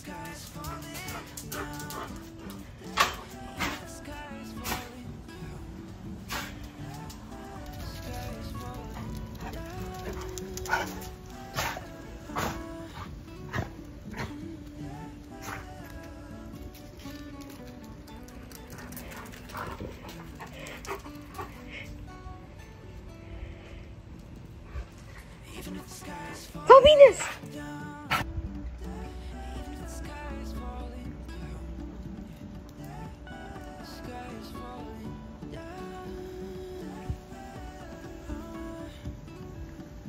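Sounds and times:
background music: 0:00.0 - 0:40.0.

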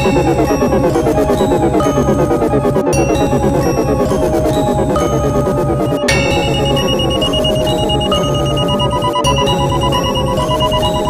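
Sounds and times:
high pulsing synthesizer tone: 0:00.0 - 0:11.0
rhythmic low bass pattern: 0:00.0 - 0:11.0
sustained synth tones: 0:00.0 - 0:11.0.

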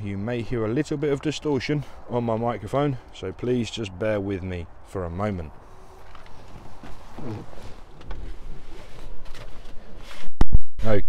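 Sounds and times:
microphone handling noise: 0:06.0 - 0:11.0.

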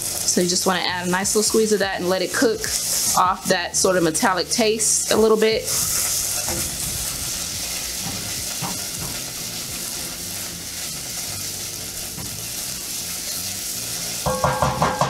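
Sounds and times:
onions sizzling in a pot: 0:00.0 - 0:15.0
spatula stirring and scraping: 0:05.2 - 0:14.2.

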